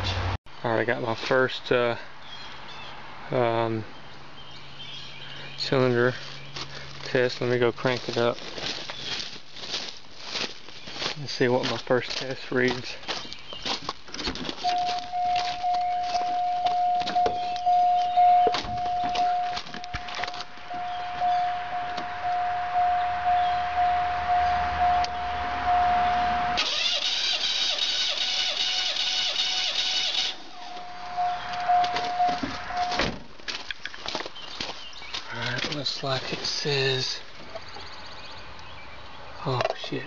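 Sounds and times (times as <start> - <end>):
car warning chime: 14.6 - 26.6
starter motor cranking engine: 26.6 - 30.4.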